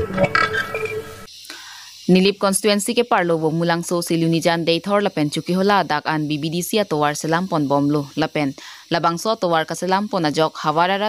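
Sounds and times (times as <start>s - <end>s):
faint hiss: 1.2s - 11.0s.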